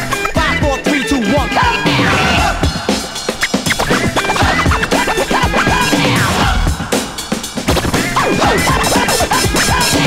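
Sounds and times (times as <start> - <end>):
music: 0.0 - 10.0
turntable scratching: 1.9 - 10.0.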